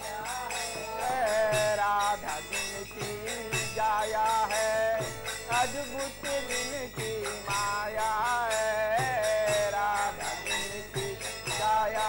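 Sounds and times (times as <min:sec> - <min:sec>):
hand drum: 0:00.0 - 0:12.0
harmonium: 0:00.0 - 0:12.0
person singing: 0:00.0 - 0:12.0
small hand cymbals clashing: 0:00.0 - 0:12.0.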